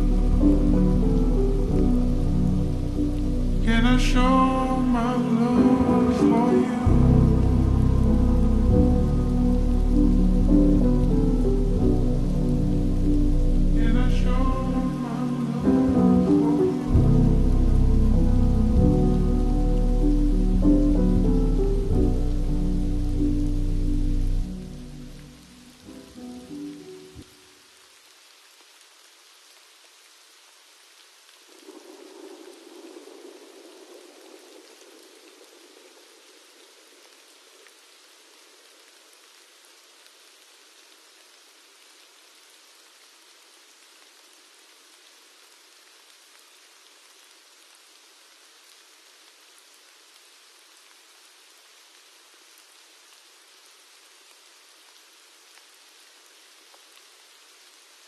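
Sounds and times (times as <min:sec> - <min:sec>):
slowed reverb-heavy pop song: 0:00.0 - 0:25.1
faint steady rain: 0:00.0 - 0:58.0.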